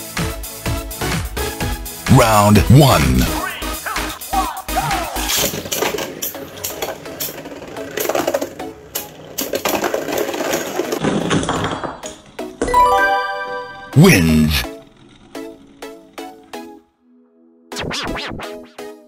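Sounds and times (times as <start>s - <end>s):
background music: 0.0s - 10.1s, 12.0s - 19.0s
electronic chime: 12.7s - 14.0s.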